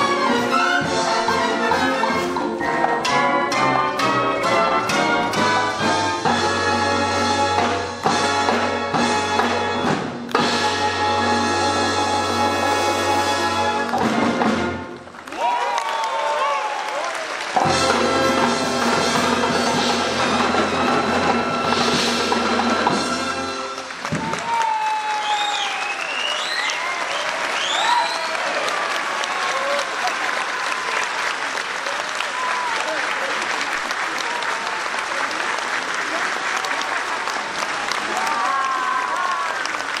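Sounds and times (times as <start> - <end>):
applause: 14.9 - 18.0, 23.4 - 40.0
crowd calling out: 37.8 - 39.9.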